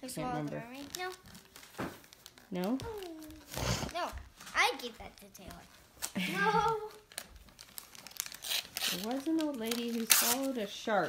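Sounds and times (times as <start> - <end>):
wrapping paper crinkling and tearing: 0.0 - 11.0.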